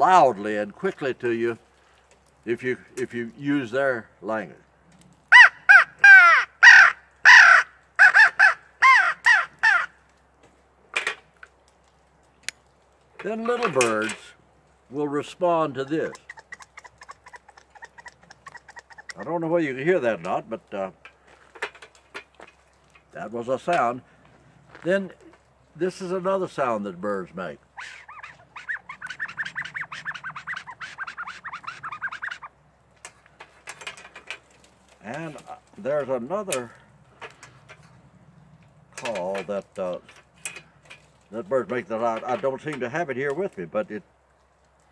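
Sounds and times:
crow call caws: 5.3s - 10.0s, 27.8s - 32.5s.

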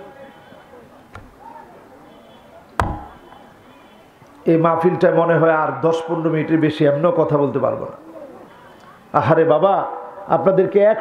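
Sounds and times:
sharp knock with deep thud: 2.8s - 3.2s.

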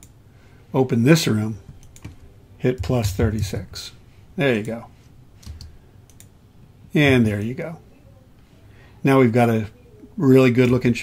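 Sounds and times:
computer mouse clicks: 1.8s - 2.2s, 5.4s - 6.3s.

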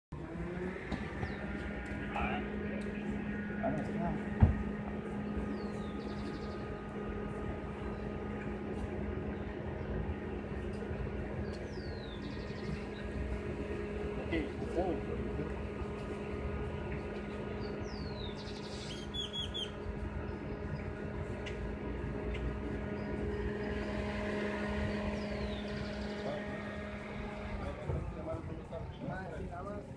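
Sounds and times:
low rumble: 0.1s - 29.9s
vehicle engine idling: 0.1s - 29.9s.

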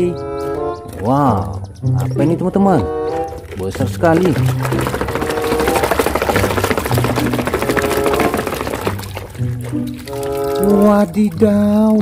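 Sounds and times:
hand squelching through wet mud: 3.1s - 11.2s.

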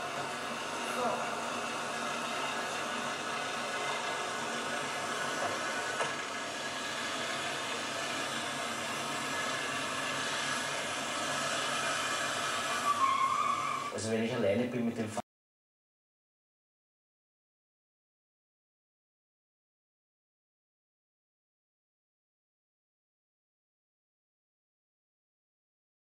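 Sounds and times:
car engine running: 0.0s - 13.0s.

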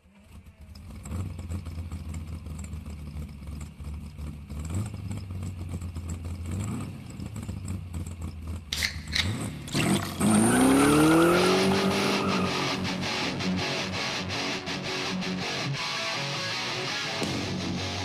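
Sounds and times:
car engine idling and revving: 0.0s - 16.6s, 17.2s - 18.0s
sharp clicks: 8.7s - 10.1s.

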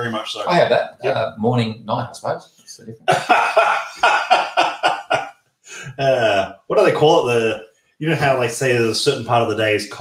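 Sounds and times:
man laughing hard: 3.1s - 6.5s.

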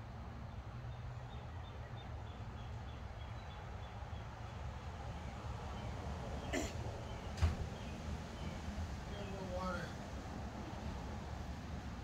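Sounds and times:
person clearing throat: 6.6s - 6.8s.

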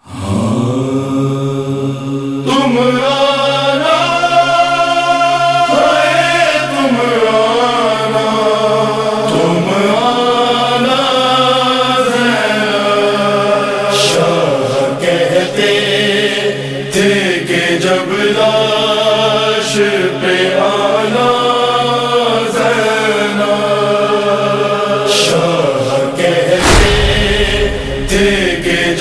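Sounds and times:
man singing a lament: 0.0s - 29.0s
steady low drone: 26.6s - 29.0s.

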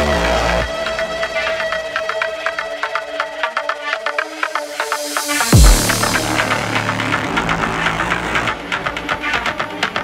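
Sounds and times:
ticking percussion: 0.1s - 10.0s
low synth bass drone: 5.5s - 8.8s.

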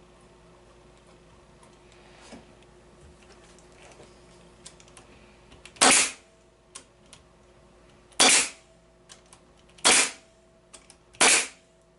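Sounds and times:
faint steady hum: 0.0s - 11.9s
pneumatic stapler: 5.8s - 6.2s, 8.2s - 8.6s, 9.8s - 10.2s, 11.2s - 11.6s.

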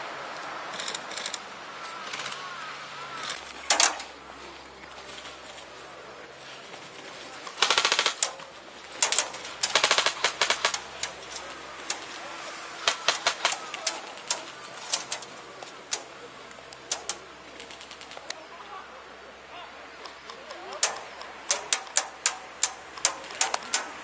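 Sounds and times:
airsoft guns firing bursts: 7.5s - 12.2s, 12.8s - 15.3s, 16.9s - 18.3s, 20.6s - 24.0s.

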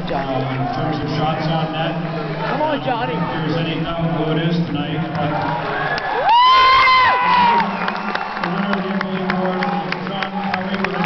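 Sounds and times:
crowd cheering: 4.6s - 11.0s
spectator whooping: 5.6s - 8.5s.

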